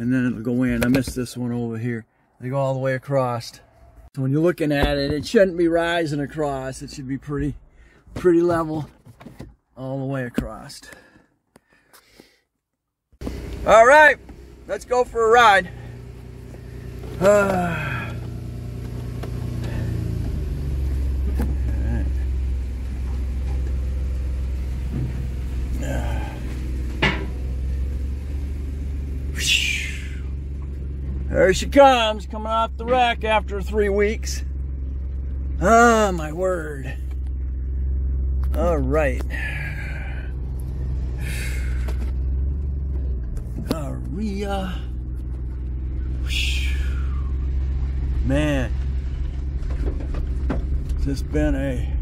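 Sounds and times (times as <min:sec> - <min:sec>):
car engine idling: 0:13.2 - 0:52.0.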